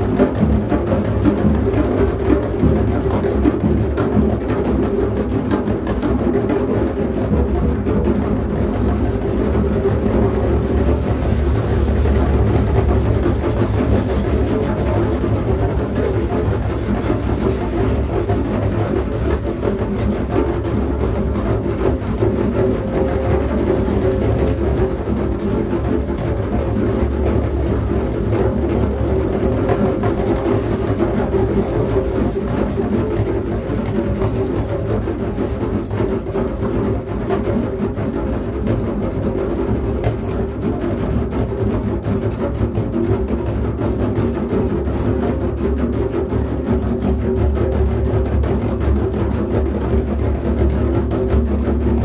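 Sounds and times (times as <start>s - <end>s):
deep drums playing: 0.0s - 34.9s
low steady drone: 9.8s - 35.2s.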